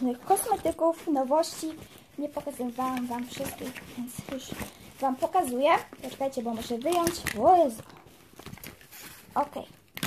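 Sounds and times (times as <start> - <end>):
packaging rustling and clicking: 0.0 - 10.0.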